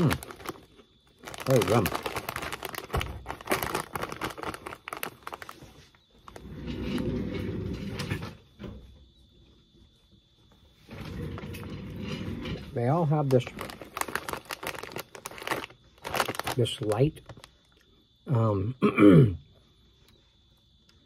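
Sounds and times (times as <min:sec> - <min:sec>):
plastic snack bag crinkling: 0:00.0 - 0:06.6, 0:12.7 - 0:17.8.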